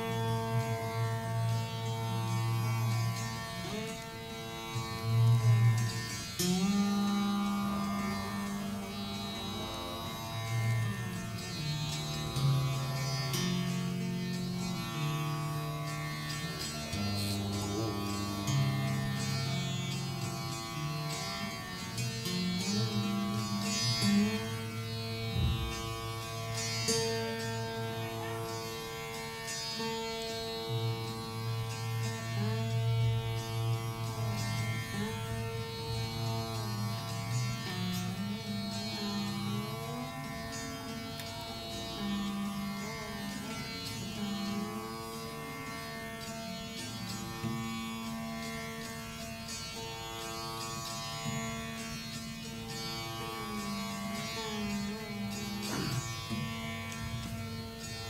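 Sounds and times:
slow plucked string instrument: 0.0s - 58.0s.

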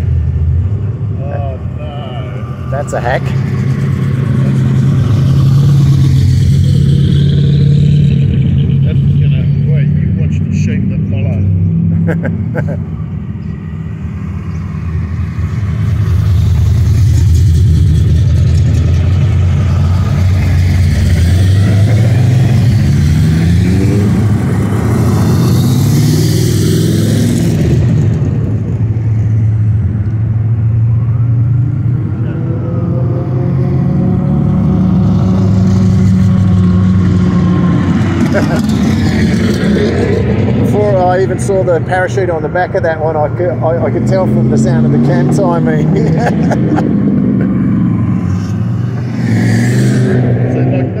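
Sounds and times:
car engine revving: 0.0s - 51.0s
car engines rumbling past: 0.0s - 51.0s.

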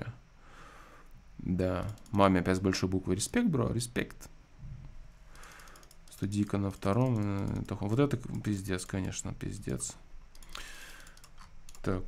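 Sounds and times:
faint computer clicks: 1.8s - 2.2s, 5.4s - 12.0s.

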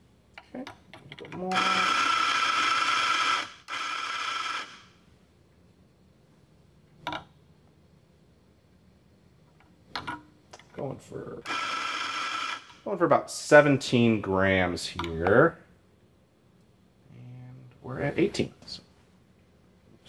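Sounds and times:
coffee grinder motor grinding: 1.5s - 4.8s, 11.5s - 12.8s.

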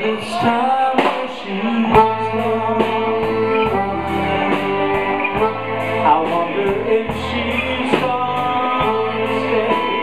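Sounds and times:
blues band playing: 0.0s - 10.0s
harmonica holding long notes: 1.7s - 10.0s.

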